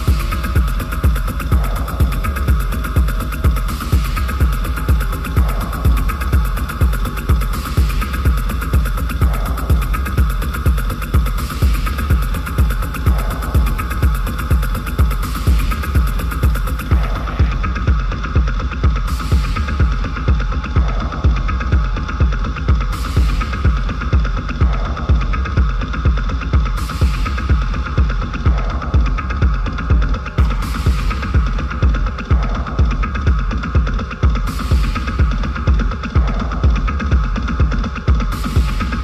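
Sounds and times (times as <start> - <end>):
deep techno music: 0.0 - 39.0.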